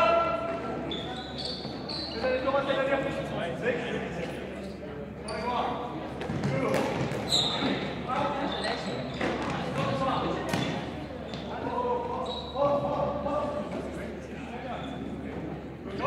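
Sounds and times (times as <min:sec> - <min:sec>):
sneaker squeaks on gym floor: 0:00.4 - 0:02.5, 0:04.6 - 0:12.9, 0:14.6 - 0:15.2.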